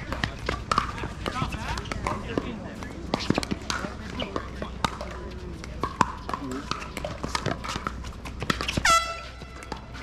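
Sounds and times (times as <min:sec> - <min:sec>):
footfalls on hard court: 0:00.0 - 0:10.0.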